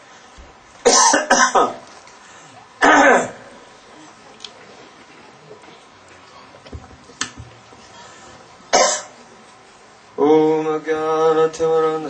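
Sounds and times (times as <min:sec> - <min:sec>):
person coughing: 0:00.9 - 0:01.8, 0:02.8 - 0:03.4, 0:08.7 - 0:09.1.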